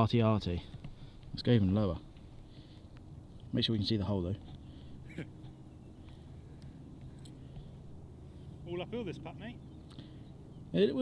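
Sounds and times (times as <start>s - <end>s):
steady low hum: 0.0s - 11.0s
man talking: 1.3s - 2.1s, 3.5s - 4.4s, 8.6s - 9.6s, 10.7s - 11.0s.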